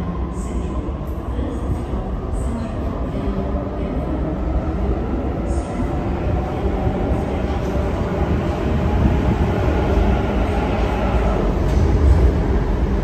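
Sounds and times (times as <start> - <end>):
train rumbling through tunnel: 0.0 - 13.0.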